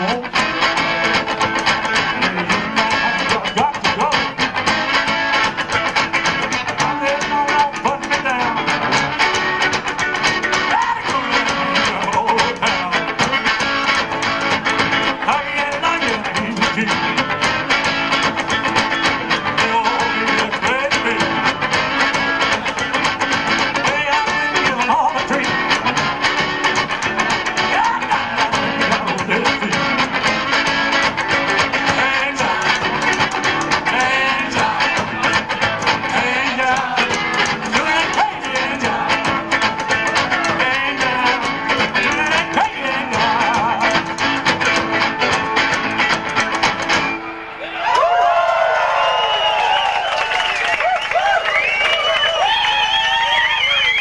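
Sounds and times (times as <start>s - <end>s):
upright bass: 0.0s - 48.9s
drums: 0.0s - 54.0s
electric guitar: 0.0s - 54.0s.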